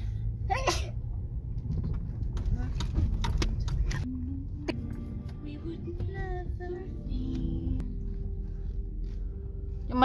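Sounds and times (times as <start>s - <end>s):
vehicle engine and tyre rumble: 0.0s - 10.0s.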